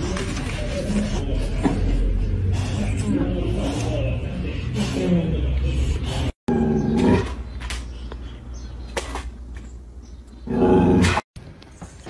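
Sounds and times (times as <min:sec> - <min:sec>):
dog growling: 0:05.9 - 0:07.4, 0:10.4 - 0:11.2.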